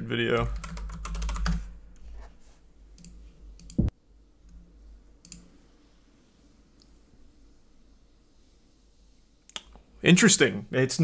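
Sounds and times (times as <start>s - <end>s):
computer mouse clicks: 3.0s - 3.9s, 5.2s - 5.5s.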